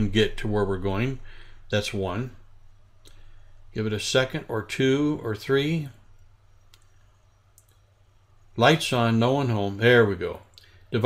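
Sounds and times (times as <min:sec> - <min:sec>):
computer mouse clicks: 0:06.2 - 0:07.9.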